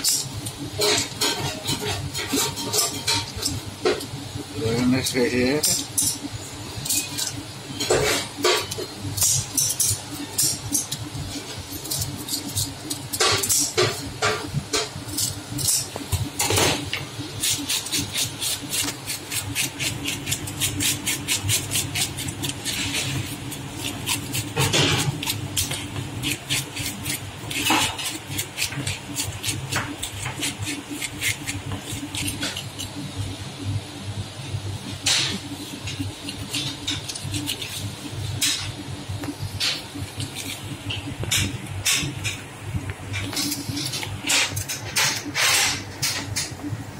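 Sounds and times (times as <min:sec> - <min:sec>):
steady low hum: 0:00.0 - 0:46.9
scaler scraping fish scales: 0:17.4 - 0:33.0, 0:35.5 - 0:38.5.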